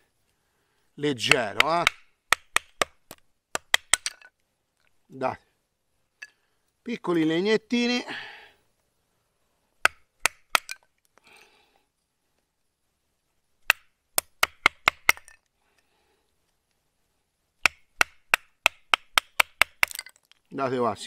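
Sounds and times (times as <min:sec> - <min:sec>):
sharp wooden knocks: 0:01.3 - 0:04.2, 0:09.8 - 0:10.8, 0:13.6 - 0:15.3, 0:17.6 - 0:20.1.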